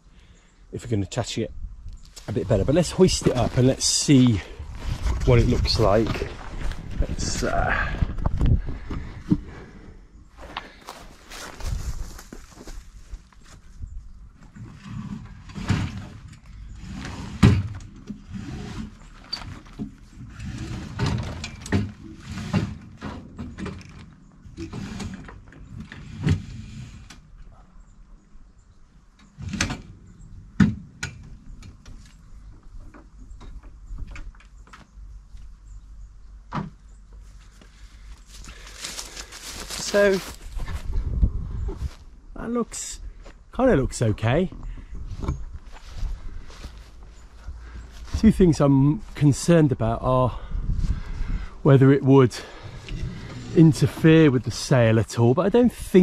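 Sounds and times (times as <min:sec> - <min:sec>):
sail cloth and rope rustling: 0:02.1 - 0:09.5, 0:10.3 - 0:13.8, 0:14.4 - 0:23.0, 0:37.2 - 0:42.6, 0:45.0 - 0:49.5.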